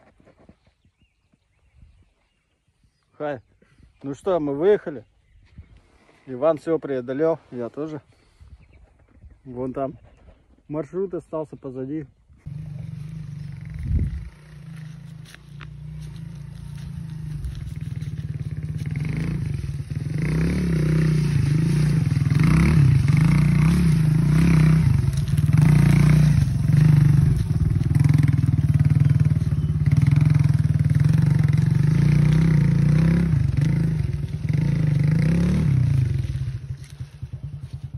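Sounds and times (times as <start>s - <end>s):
motorcycle engine riding past: 12.4s - 37.9s.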